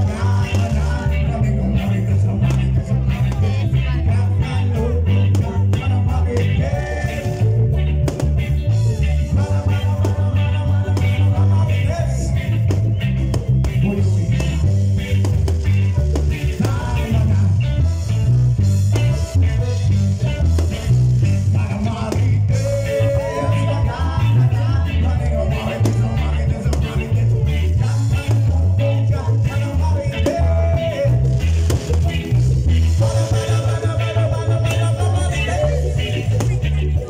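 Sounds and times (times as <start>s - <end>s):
person singing: 0.0s - 15.6s, 16.3s - 18.4s, 21.2s - 32.2s, 32.9s - 37.0s
electric bass line: 0.0s - 37.0s
electric guitar: 0.0s - 37.0s
live band playing: 0.0s - 37.0s.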